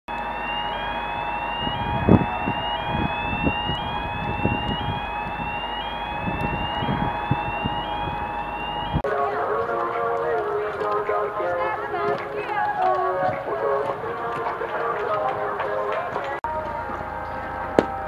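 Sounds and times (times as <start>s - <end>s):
rising siren-like electronic tone: 0.1s - 9.1s
steady hum: 0.1s - 18.0s.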